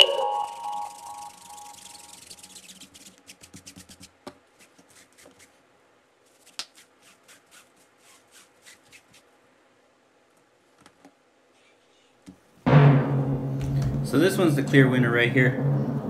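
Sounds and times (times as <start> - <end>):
chime-like music sting: 0.0 - 1.8
scratchy scrubbing strokes: 0.0 - 5.6, 6.3 - 9.3
towel rubbing: 0.3 - 5.6, 6.3 - 9.4.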